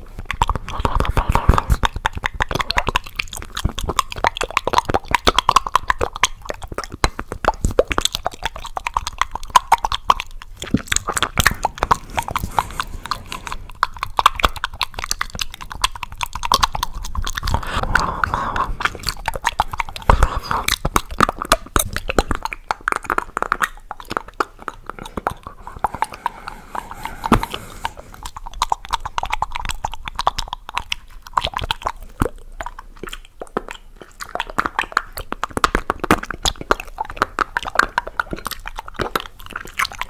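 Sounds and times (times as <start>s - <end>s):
wet chewing mouth sounds: 0.0s - 40.0s.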